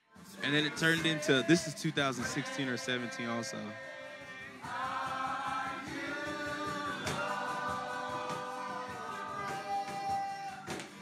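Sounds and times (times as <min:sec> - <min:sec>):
group singing worship song: 0:00.2 - 0:11.0.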